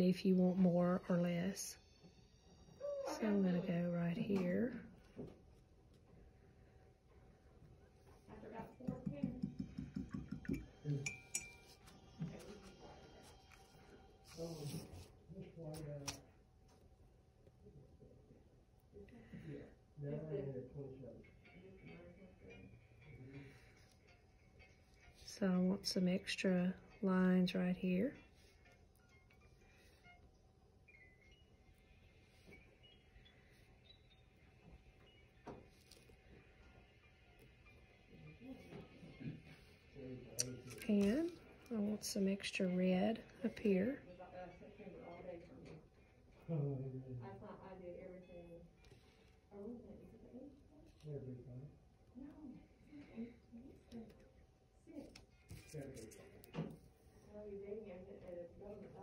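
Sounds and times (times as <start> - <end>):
glassy clink: 8.9 - 11.8.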